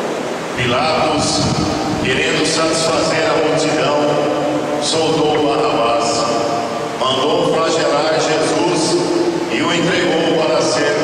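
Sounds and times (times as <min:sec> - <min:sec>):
man reading aloud: 0:00.6 - 0:11.0.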